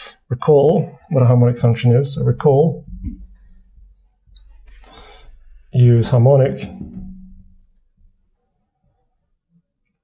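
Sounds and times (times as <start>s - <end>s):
marker squeaking on glass: 2.5s - 5.4s.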